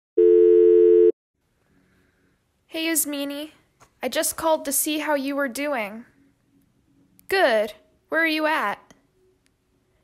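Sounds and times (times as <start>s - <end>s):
low electronic phone tone: 0.2s - 1.2s.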